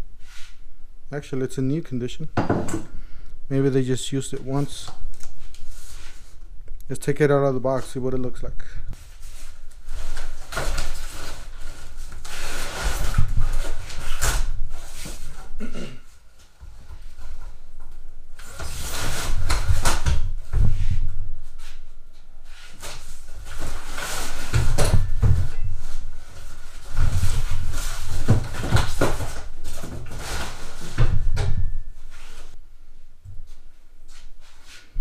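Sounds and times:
cardboard and foam rustling: 9.0 - 15.6, 22.7 - 32.6.

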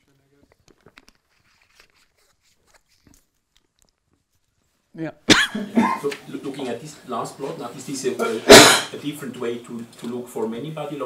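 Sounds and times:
man coughing: 5.3 - 6.1, 8.5 - 8.9
man speaking: 5.6 - 11.0.

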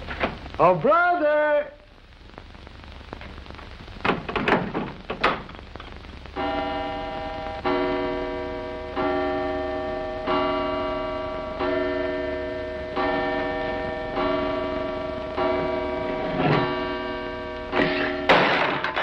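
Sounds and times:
mantel clock chiming: 6.4 - 18.3
objects crashing over: 17.8 - 19.0.

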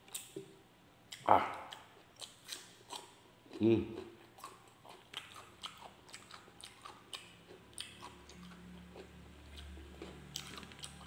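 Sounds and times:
chewing crunchy cucumber: 1.1 - 11.0.

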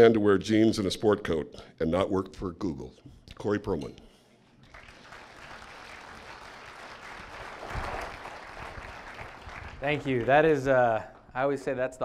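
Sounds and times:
audience applauding: 4.6 - 10.7.

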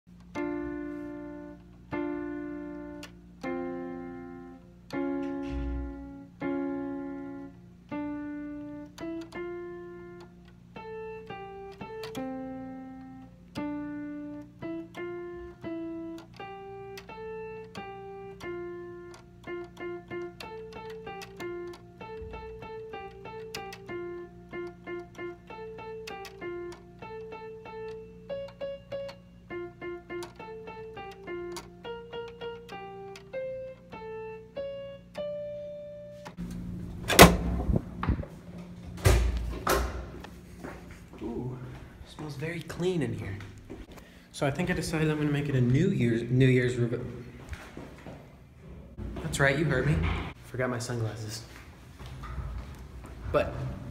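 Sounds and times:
electronic keyboard melody: 0.1 - 37.8
steady low hum: 0.1 - 53.9.

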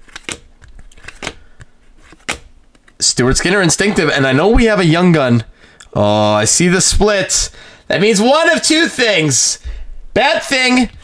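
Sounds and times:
trading cards flipped snapping: 0.0 - 3.0.

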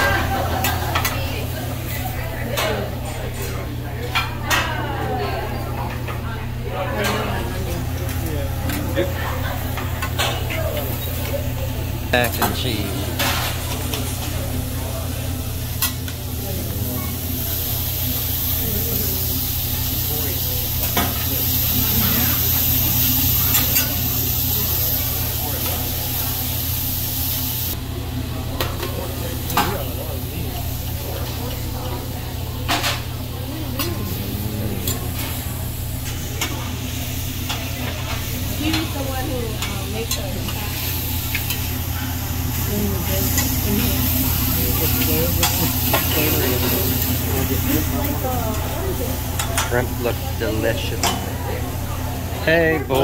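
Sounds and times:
food sizzling on griddle: 15.5 - 27.8, 32.7 - 51.3.

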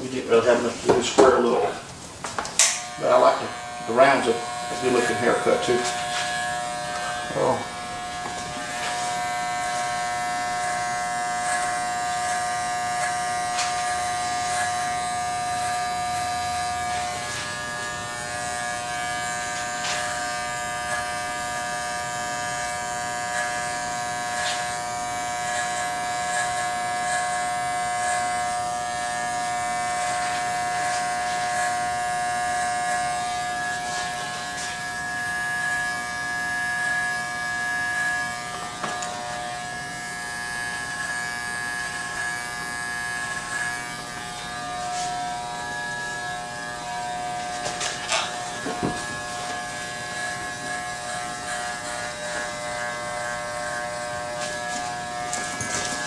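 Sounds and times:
electric hair clippers buzzing: 0.3 - 56.0.

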